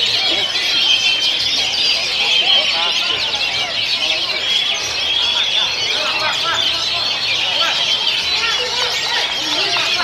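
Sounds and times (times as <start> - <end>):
chorus of songbirds singing: 0.0 - 10.0.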